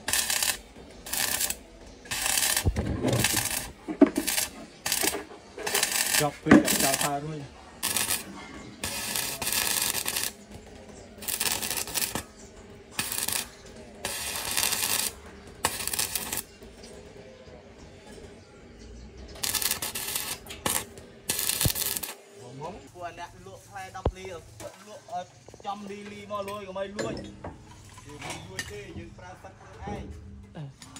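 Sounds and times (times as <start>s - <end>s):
welding arc crackling: 0.0s - 16.5s, 19.4s - 22.2s.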